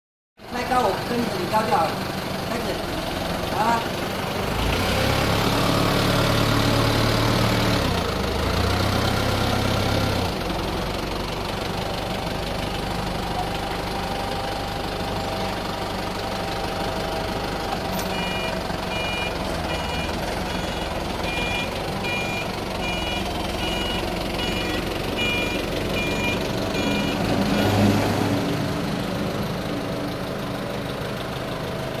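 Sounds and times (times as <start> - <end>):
forklift engine running: 0.4 - 32.0
forklift warning beeper: 16.5 - 27.9.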